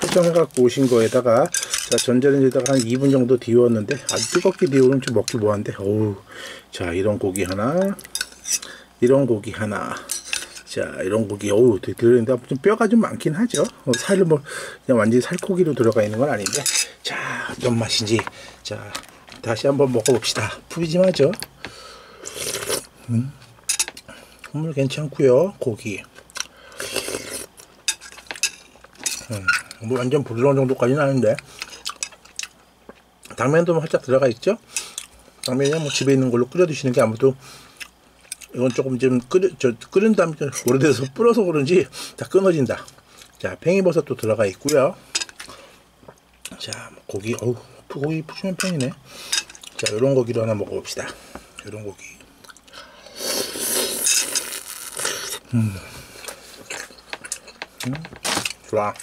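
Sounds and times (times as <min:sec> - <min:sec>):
utensils clinking on glass bowl: 0:01.4 - 0:03.2, 0:03.9 - 0:05.4
person humming mm: 0:55.1 - 0:56.1.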